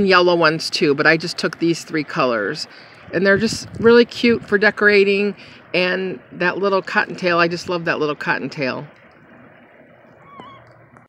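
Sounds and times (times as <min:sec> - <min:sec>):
wind on microphone: 0:03.0 - 0:11.0
wavering bird call: 0:10.1 - 0:10.9.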